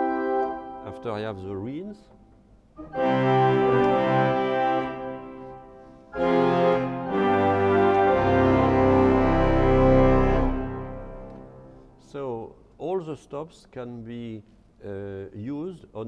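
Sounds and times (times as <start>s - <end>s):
pipe organ playing chords: 0.0s - 1.9s, 2.8s - 12.1s.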